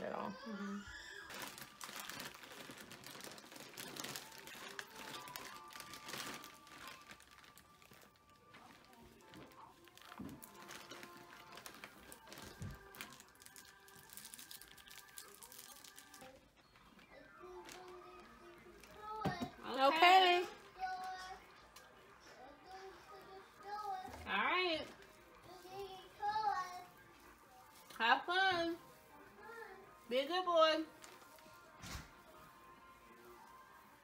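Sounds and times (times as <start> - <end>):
faint music: 0.0 - 34.0.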